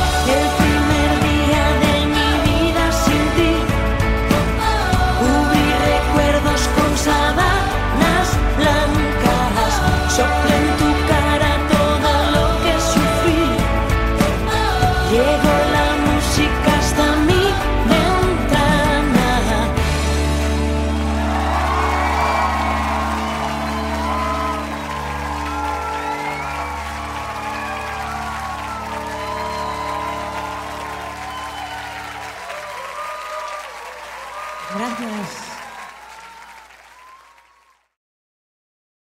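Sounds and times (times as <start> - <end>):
audience cheering and applause: 0.0 - 18.6, 19.4 - 38.0
live rock song final chord: 0.0 - 32.3.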